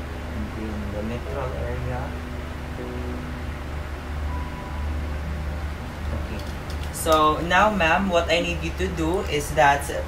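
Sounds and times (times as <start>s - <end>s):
low room hum: 0.0s - 10.0s
faint high tone: 1.3s - 6.4s.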